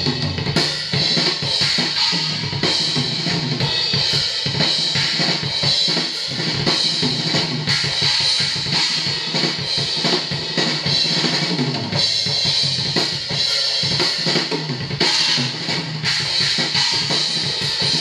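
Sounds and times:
drum kit playing a groove: 0:00.0 - 0:18.0.

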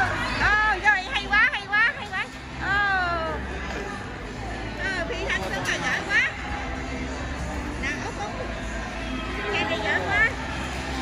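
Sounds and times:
indoor crowd hubbub: 0:00.0 - 0:11.0.

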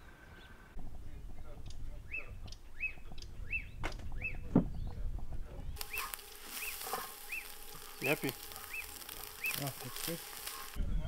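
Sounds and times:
bird calling: 0:01.3 - 0:05.0, 0:05.7 - 0:10.8
steady hiss: 0:05.8 - 0:10.8.

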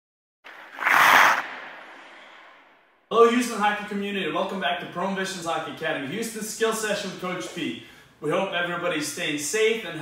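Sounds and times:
whoosh and burst effect: 0:00.5 - 0:03.1.

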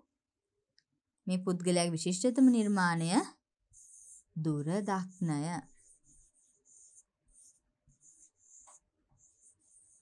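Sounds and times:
stylus scratching on screen: 0:02.4 - 0:10.0.

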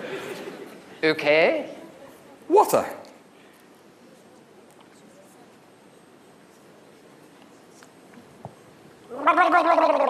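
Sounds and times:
man gargling water: 0:09.1 - 0:10.0.

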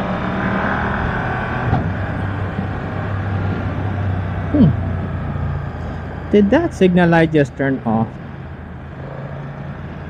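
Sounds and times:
motorcycle engine cruising: 0:00.0 - 0:10.0
road noise: 0:00.0 - 0:10.0.

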